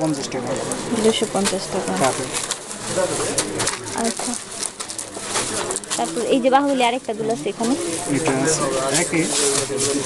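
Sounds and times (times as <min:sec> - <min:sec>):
plastic packaging crinkling: 0:00.2 - 0:10.0.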